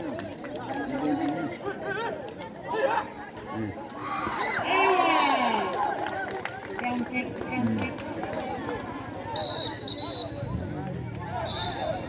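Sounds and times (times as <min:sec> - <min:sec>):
spectators chattering and calling: 0:00.0 - 0:12.0.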